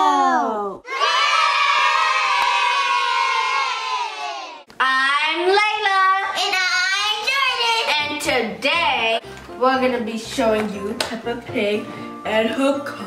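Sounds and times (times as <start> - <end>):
children cheering: 0.0 - 4.7
children's voices: 5.0 - 8.0.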